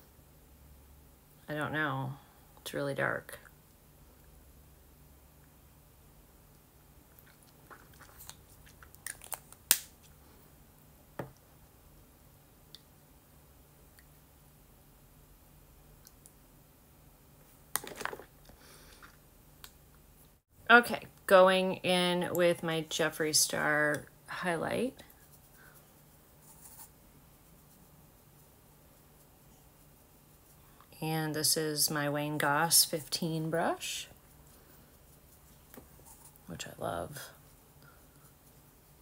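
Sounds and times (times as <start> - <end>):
wet lip clicks and smacks: 7.1 - 9.9
makeup brush swishing: 33.7 - 36.8.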